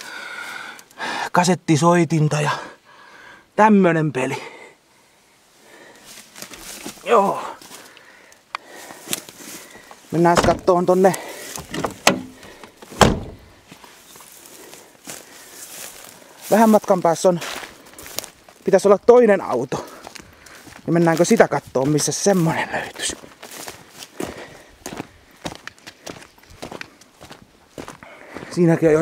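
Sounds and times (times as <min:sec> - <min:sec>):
faint footsteps: 0:05.6 - 0:29.0
car door slamming: 0:10.3 - 0:10.7, 0:11.6 - 0:13.5
car door click: 0:11.6 - 0:12.4, 0:13.0 - 0:13.5.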